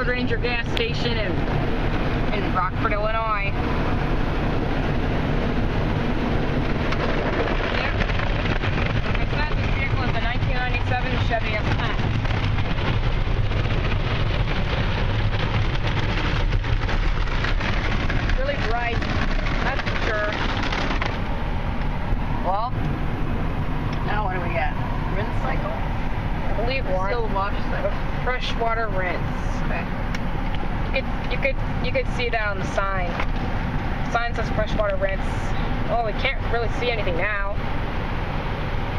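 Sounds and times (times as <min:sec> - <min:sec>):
car wash water spray: 0:00.1 - 0:24.1.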